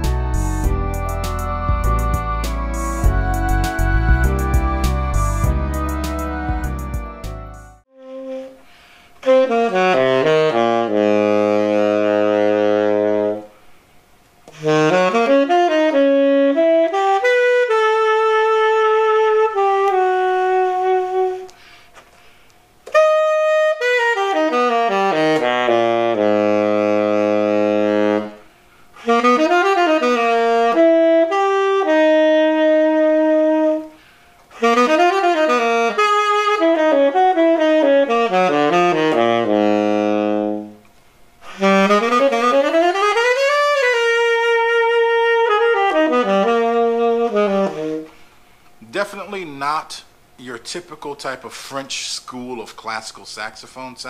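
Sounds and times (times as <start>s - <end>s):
tenor saxophone playing: 0.0s - 13.7s, 14.4s - 21.8s, 22.8s - 48.9s.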